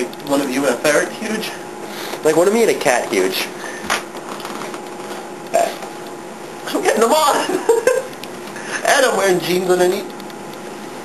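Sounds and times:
clothing rustling and scraping: 3.9s - 6.0s.

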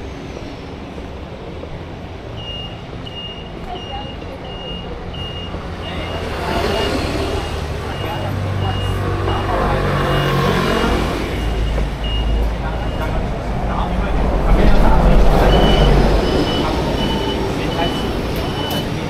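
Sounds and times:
road traffic: 0.0s - 19.0s
vehicle passing close: 5.6s - 19.0s
repeating high electronic beep: 15.3s - 18.9s.

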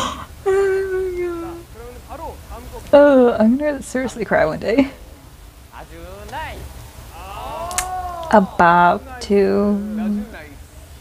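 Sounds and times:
person exclaiming: 0.4s - 1.7s, 7.1s - 10.4s
sharp click: 7.7s - 7.9s.

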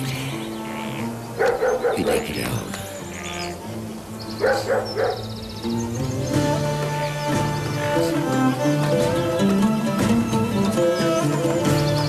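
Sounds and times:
soft background music: 0.0s - 12.0s
dog barking: 1.4s - 2.2s, 4.4s - 5.2s.

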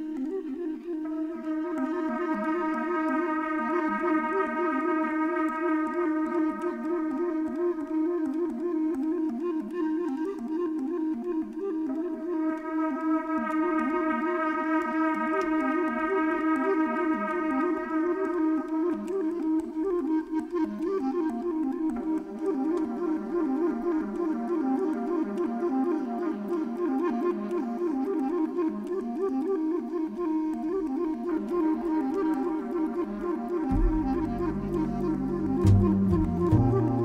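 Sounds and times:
improvised jazz on woodwinds: 0.0s - 37.0s.

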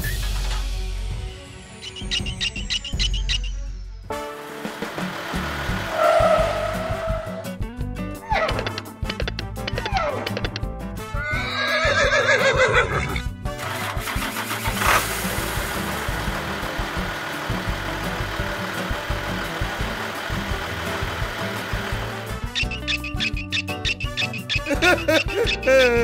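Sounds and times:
background music: 0.0s - 26.0s
vehicle engine running: 4.1s - 7.7s, 13.5s - 25.8s
horse whinny: 11.1s - 13.3s.

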